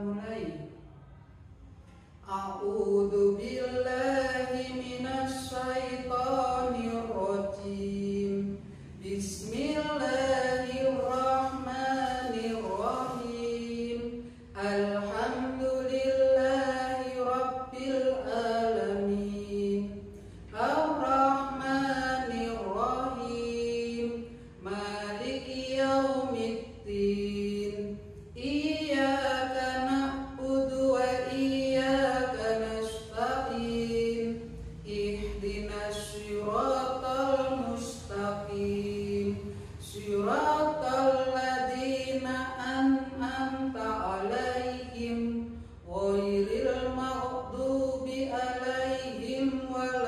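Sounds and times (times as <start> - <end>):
person chanting a prayer: 2.2 - 50.0.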